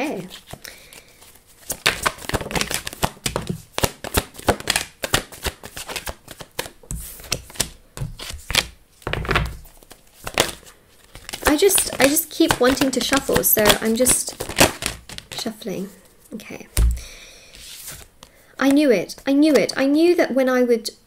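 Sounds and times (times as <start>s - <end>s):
cards being shuffled: 0.2s - 15.5s, 16.8s - 19.8s
cards falling on wooden table: 6.3s - 10.6s.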